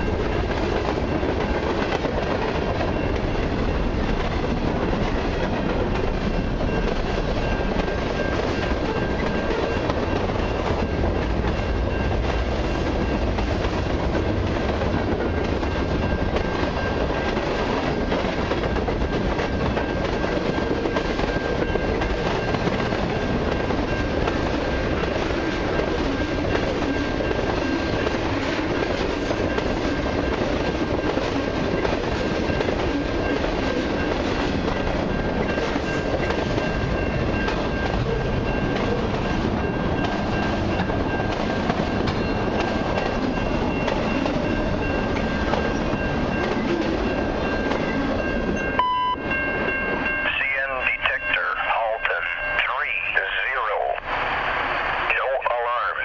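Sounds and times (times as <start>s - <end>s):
freight train wheels rumbling on rail: 0.0s - 56.0s
voice over radio scanner: 50.3s - 54.0s, 55.0s - 56.0s.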